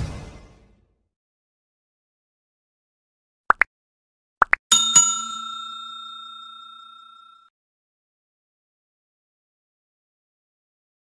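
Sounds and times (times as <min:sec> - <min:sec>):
bell-like notification chime: 0:04.7 - 0:07.5.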